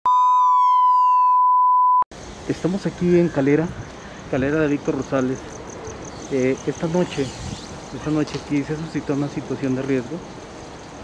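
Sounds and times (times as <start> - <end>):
tone gliding downward: 0.1 - 1.8
high pure beep tone: 0.1 - 2.1.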